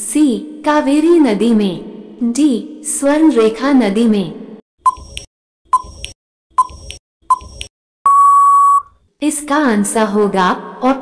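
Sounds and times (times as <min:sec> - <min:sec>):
timer tick: 0:04.9 - 0:07.7
loud electronic beep: 0:08.1 - 0:08.9.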